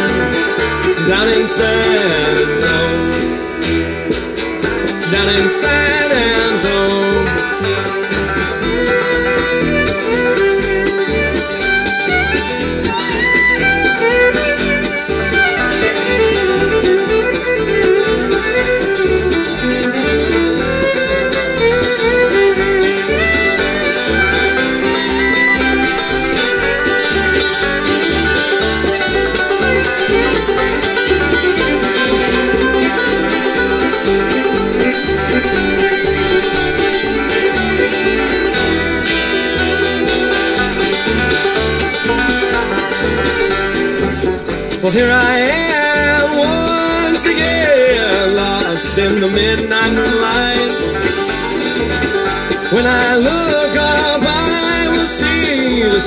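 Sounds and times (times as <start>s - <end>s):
fiddle melody: 0.0s - 56.0s
pulsing bass line: 0.0s - 56.0s
strummed guitar: 0.0s - 56.0s.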